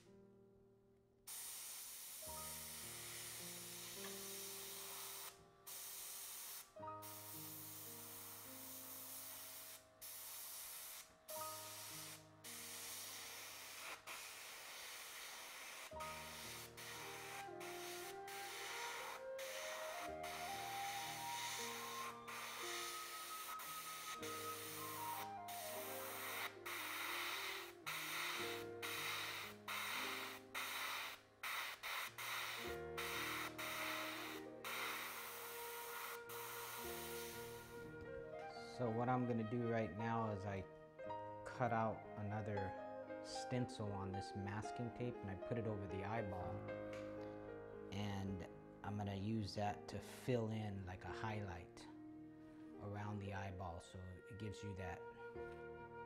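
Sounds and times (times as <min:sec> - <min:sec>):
soft background music: 0:00.0 - 0:56.0
airbrush hissing: 0:01.3 - 0:37.9.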